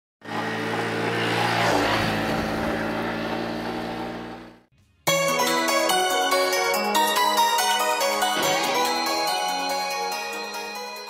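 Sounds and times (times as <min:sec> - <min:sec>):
small motorbike engine running: 0:00.2 - 0:04.6.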